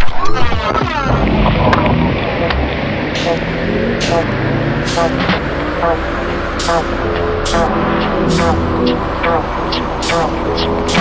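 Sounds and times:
low rumbling drone: 1.1 - 11.0.

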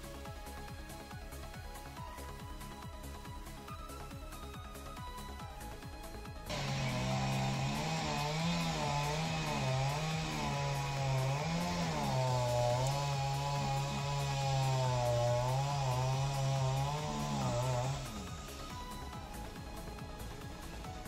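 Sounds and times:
chainsaw engine revving: 6.5 - 21.0.

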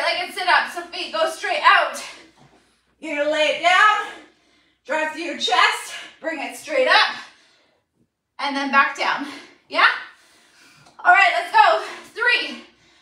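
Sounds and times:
woman speaking: 0.0 - 2.2, 3.0 - 4.2, 4.9 - 7.2, 8.4 - 10.1, 11.0 - 12.7.

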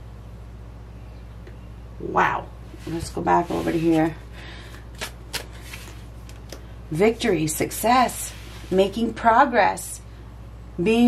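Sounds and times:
crisp card snaps: 4.7 - 6.6.

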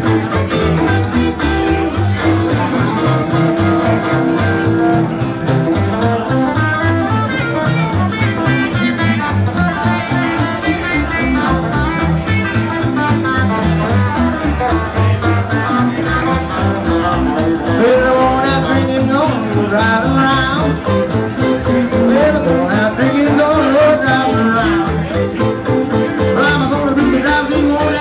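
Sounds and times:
electric guitars picking runs: 0.0 - 28.0
low bass notes: 0.0 - 28.0.

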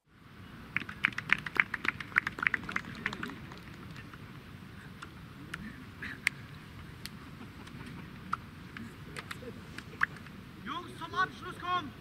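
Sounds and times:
faint outdoor murmur: 0.0 - 12.0
spectators clapping: 0.7 - 4.2.

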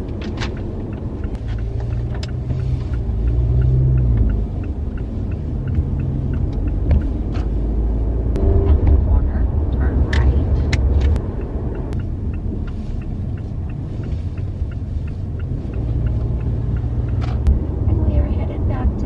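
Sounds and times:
engine and tyre rumble in car: 0.0 - 19.0
faint regular ticking: 0.0 - 19.0.

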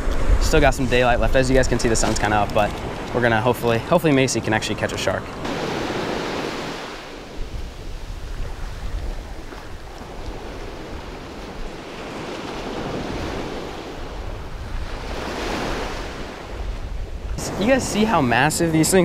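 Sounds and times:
ocean surf breaking: 0.0 - 19.0
wind buffeting microphone: 0.0 - 19.0.

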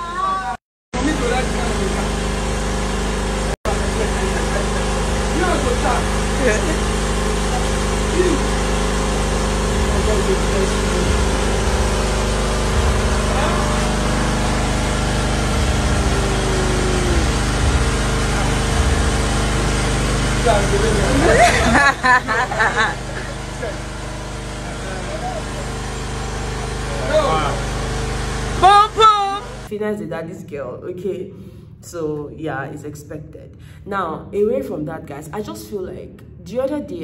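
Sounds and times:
car engine idling: 1.0 - 29.7.

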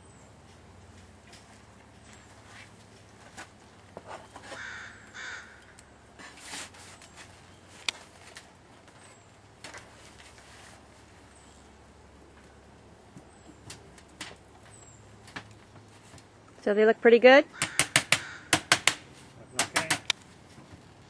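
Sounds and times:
bird calling: 4.2 - 5.9, 17.5 - 18.8
wooden hive parts knocking: 17.6 - 19.0, 19.6 - 20.8.

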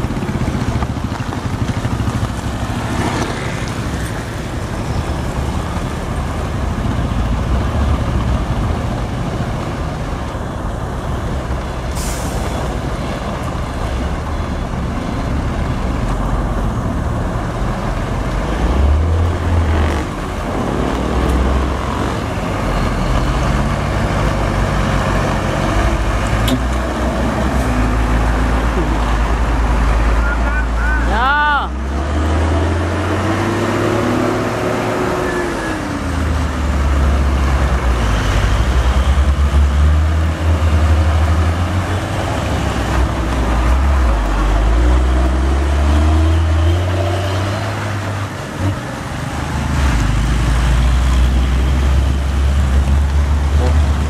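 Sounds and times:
heavy diesel trucks rumbling past: 0.0 - 54.0.

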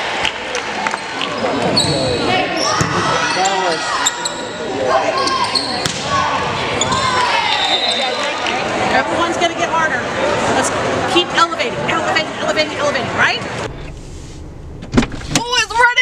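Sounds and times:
players shouting and cheering: 0.0 - 13.7.

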